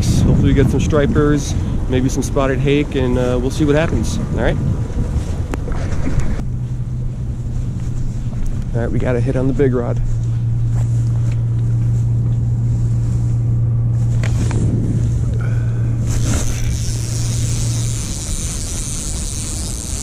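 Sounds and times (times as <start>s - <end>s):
steady low hum: 0.0s - 20.0s
fishing reel winding: 16.1s - 20.0s.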